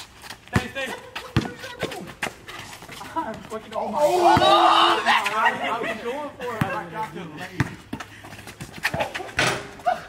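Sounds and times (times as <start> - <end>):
players' voices: 0.0 - 10.0
basketball bouncing on concrete: 0.2 - 3.6, 6.4 - 9.7.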